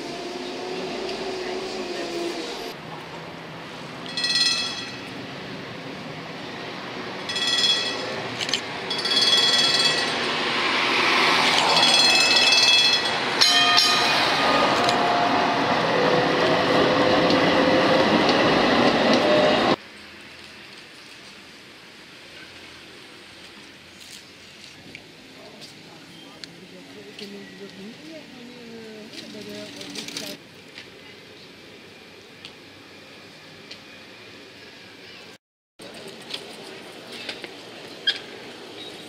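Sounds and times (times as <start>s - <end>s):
tram running on track: 0.0s - 19.8s
tram warning bell ringing: 4.0s - 5.3s, 7.2s - 10.6s, 11.5s - 15.6s.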